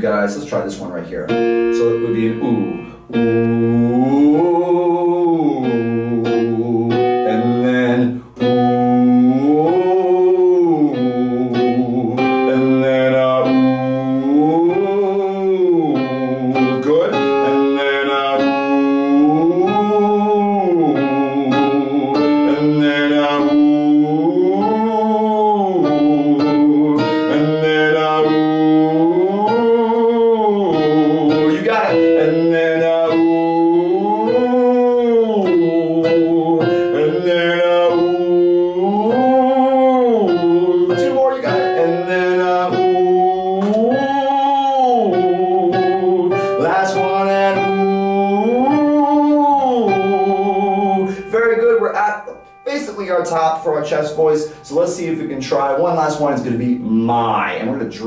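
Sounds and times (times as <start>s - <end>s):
man singing vocal slide: 0.0s - 58.0s
piano notes: 0.0s - 58.0s.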